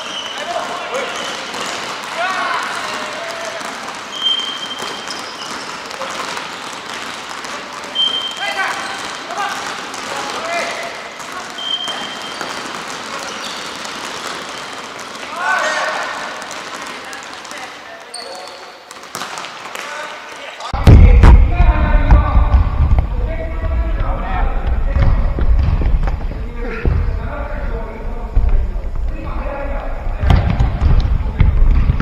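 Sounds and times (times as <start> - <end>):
sneakers squeaking on wooden floor: 0.0 - 16.9, 18.0 - 19.4
players shouting: 15.3 - 16.4, 26.4 - 30.9
sharp ball kicks: 20.8 - 27.3, 30.0 - 32.0.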